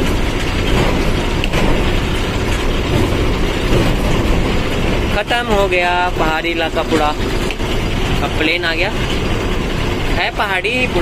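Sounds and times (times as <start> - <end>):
road noise: 0.0 - 11.0
truck engine: 0.0 - 11.0.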